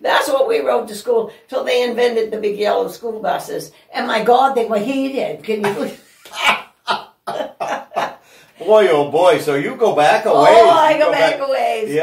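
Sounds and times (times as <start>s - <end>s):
woman laughing: 5.6s - 8.3s.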